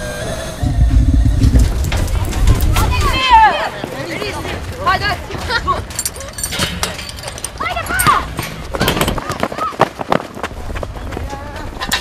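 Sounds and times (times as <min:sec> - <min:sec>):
low rumble: 0:00.0 - 0:03.3.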